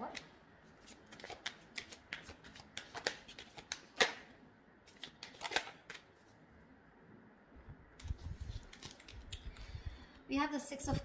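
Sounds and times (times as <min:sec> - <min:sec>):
cards being shuffled: 0:00.8 - 0:04.2, 0:04.9 - 0:06.1, 0:08.0 - 0:09.3.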